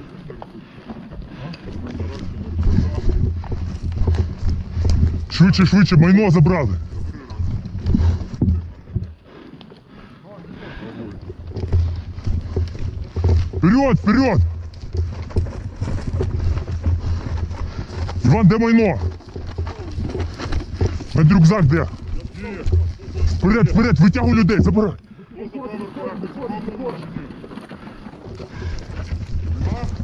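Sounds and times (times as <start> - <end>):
footsteps and gear knocks: 0.0 - 9.9, 11.1 - 30.0
wind rumbling on microphone: 1.2 - 9.2, 11.1 - 25.0, 26.5 - 30.0
wind buffeting microphone: 1.7 - 9.2, 27.8 - 30.0.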